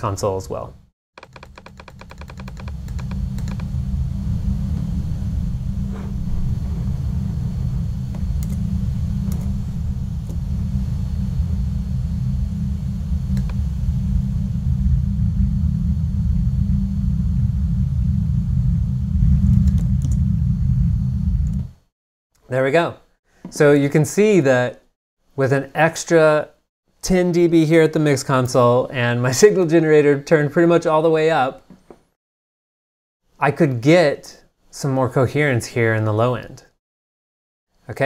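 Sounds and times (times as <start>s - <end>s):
low rumbling pink noise: 1.7s - 21.9s.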